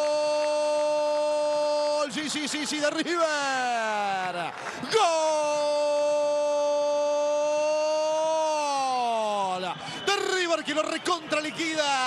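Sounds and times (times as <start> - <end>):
man shouting goal cry: 0.0 - 4.1, 4.8 - 12.0.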